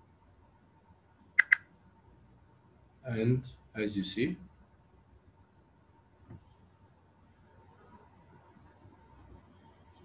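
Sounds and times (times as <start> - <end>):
computer mouse clicks: 1.4 - 1.7.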